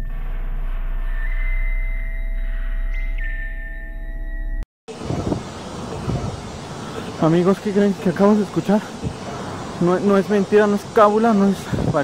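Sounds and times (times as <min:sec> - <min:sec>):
drone music: 0:00.0 - 0:07.3.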